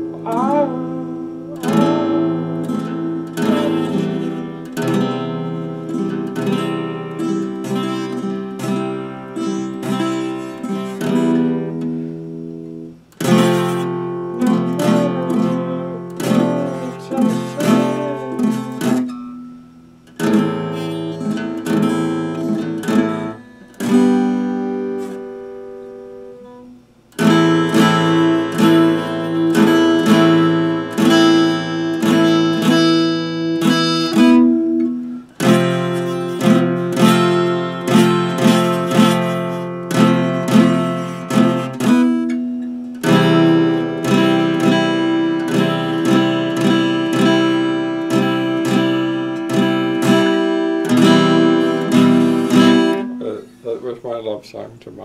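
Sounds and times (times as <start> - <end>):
acoustic guitar strumming chords: 0.0 - 54.3.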